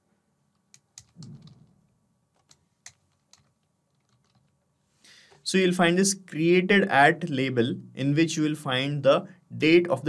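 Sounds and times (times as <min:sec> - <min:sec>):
computer keyboard keystrokes: 0:00.7 - 0:01.6.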